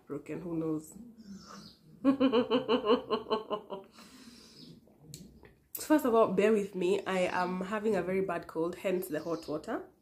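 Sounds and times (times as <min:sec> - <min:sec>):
woman giggling: 0:02.0 - 0:03.9.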